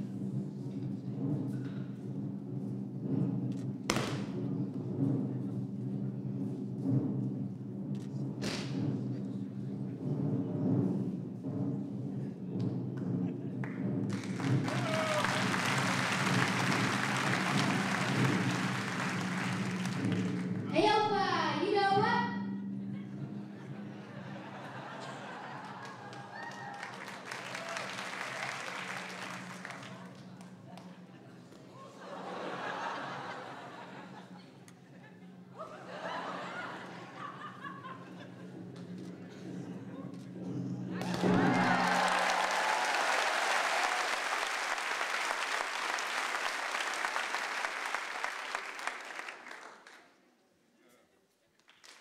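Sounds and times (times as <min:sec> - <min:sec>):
audience applauding: 0:13.6 - 0:20.8, 0:24.2 - 0:34.0, 0:41.0 - 0:50.2, 0:51.6 - 0:52.0.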